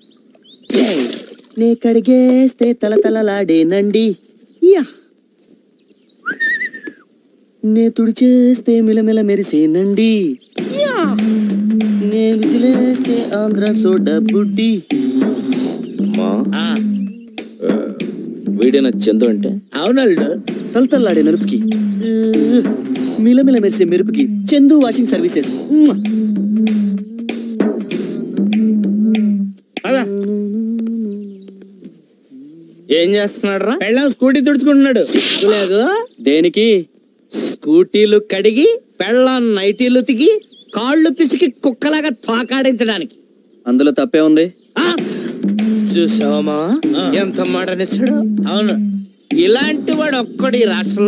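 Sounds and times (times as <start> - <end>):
person whistling a rising note: 6.2 - 7.0, 25.9 - 27.7
person humming low note: 10.9 - 18.2, 21.3 - 24.8, 25.7 - 32.9, 45.3 - 49.1.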